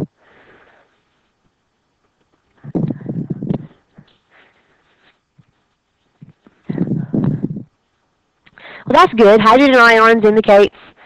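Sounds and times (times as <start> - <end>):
muffled person speaking: 2.6 - 4.0, 8.8 - 10.8.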